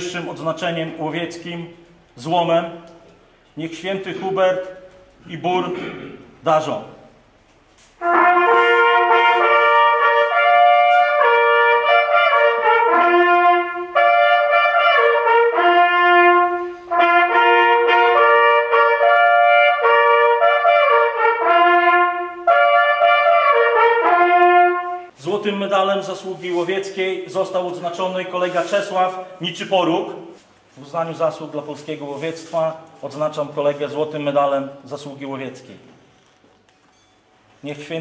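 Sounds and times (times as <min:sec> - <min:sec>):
hunting horns playing fanfare: 0:08.0 - 0:25.2.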